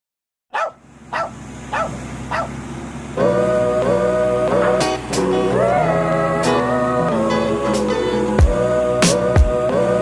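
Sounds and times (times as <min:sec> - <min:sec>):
dog barking: 0:00.5 - 0:02.6.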